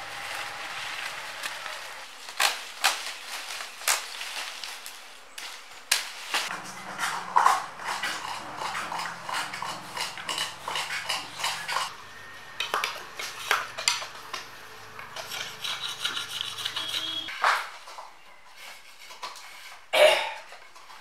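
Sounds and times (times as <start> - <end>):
leaves rustling: 0.0 - 8.6
knives scraping palm leaves: 0.0 - 11.9, 12.8 - 17.6.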